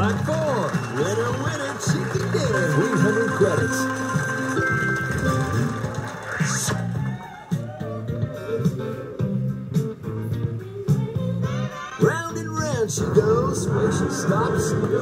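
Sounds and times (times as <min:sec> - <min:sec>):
announcer voice: 0:00.0 - 0:04.1, 0:12.0 - 0:15.0.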